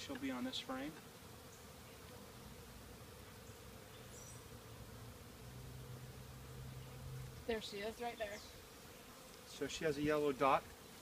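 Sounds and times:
honeybees buzzing: 0:00.0 - 0:11.0.

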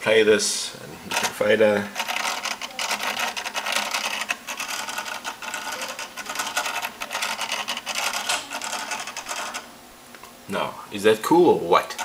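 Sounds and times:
motorized fader whirring and scraping: 0:00.9 - 0:09.7.

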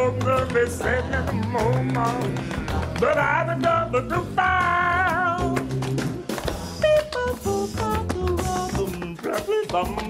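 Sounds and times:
band accompaniment: 0:00.0 - 0:10.0
person singing: 0:00.0 - 0:10.0.

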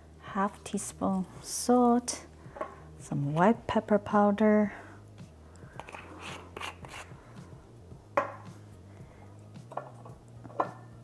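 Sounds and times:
spice jars tapping on wooden board: 0:08.2 - 0:08.5.

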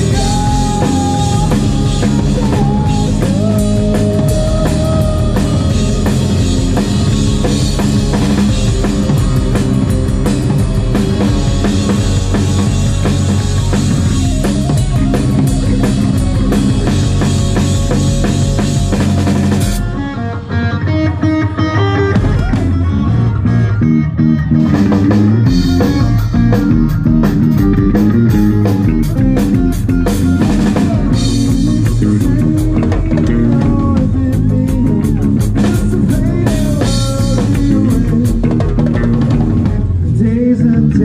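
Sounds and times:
steady drumming: 0:00.0 - 0:20.1, 0:24.6 - 0:40.3
bass guitar: 0:00.0 - 0:41.0
electric guitar: 0:00.0 - 0:41.0.

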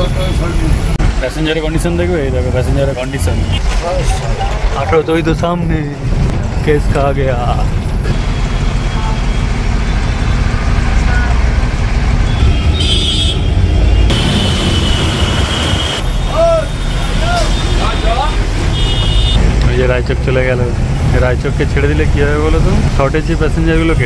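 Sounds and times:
bus diesel engine rumble: 0:01.8 - 0:24.0.

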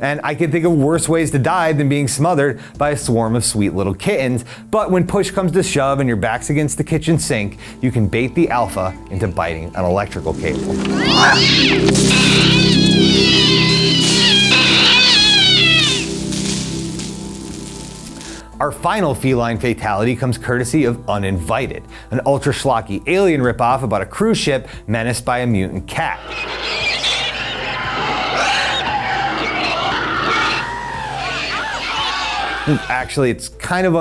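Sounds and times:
horror soundtrack screeching: 0:10.2 - 0:18.2, 0:26.1 - 0:32.9
arching squeals: 0:10.4 - 0:16.9, 0:26.1 - 0:32.9
cat yowling: 0:10.9 - 0:16.1, 0:26.2 - 0:32.9.

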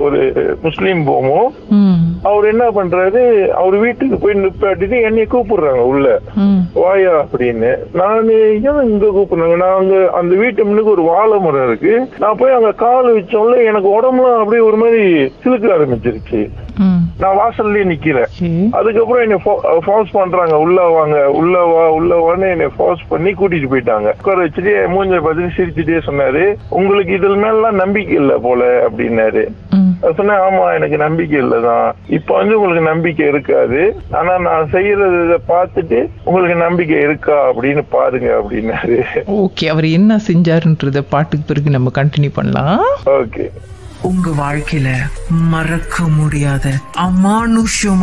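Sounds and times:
person talking: 0:00.4 - 0:02.3, 0:06.2 - 0:07.5, 0:15.9 - 0:18.8, 0:26.7 - 0:30.3, 0:42.6 - 0:48.0.

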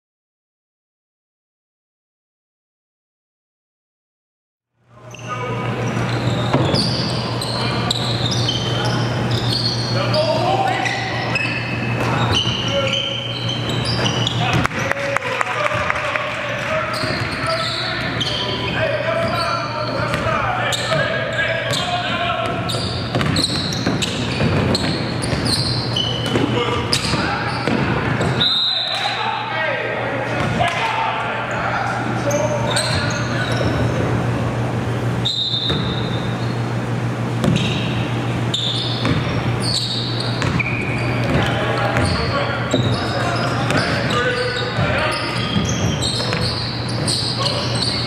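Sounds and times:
sneaker squeaks: 0:05.0 - 0:15.1, 0:15.7 - 0:29.6, 0:30.2 - 0:34.4, 0:35.0 - 0:48.0
basketball bouncing on hardwood: 0:22.4 - 0:25.5, 0:40.4 - 0:43.0.

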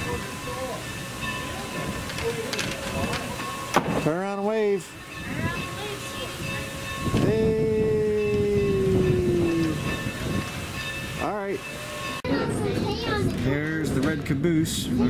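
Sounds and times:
steam locomotive whistle: 0:06.0 - 0:10.6, 0:11.6 - 0:12.2.

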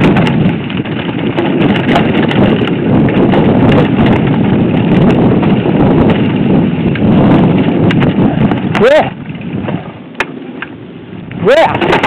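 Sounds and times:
tyres on loose stones: 0:00.0 - 0:12.0.

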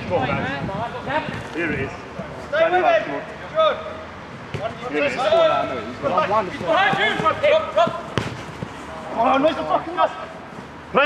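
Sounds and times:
ball being kicked: 0:06.6 - 0:08.7.

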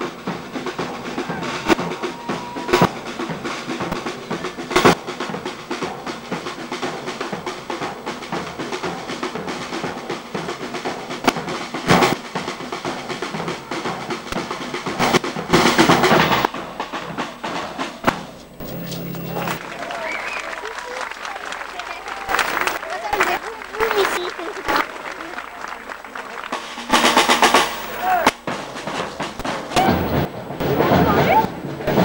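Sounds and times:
snare drum: 0:00.0 - 0:21.1, 0:21.8 - 0:32.0
crowd voices: 0:00.0 - 0:32.0.

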